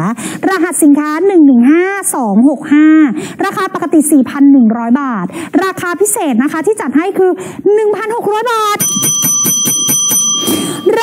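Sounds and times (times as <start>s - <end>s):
rapid bell ringing: 8.7s - 11.0s.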